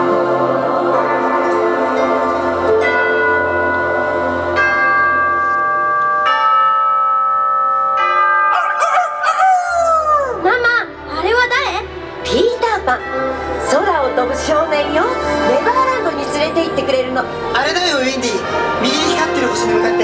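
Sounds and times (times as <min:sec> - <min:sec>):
swooping wavering melodic music: 0:00.0 - 0:20.0
clock bell striking: 0:01.0 - 0:09.5.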